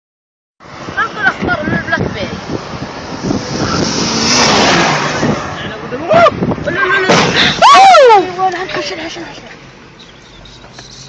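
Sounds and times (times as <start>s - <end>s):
car engine: 0.6s - 11.0s
road and tyre noise: 0.6s - 11.0s.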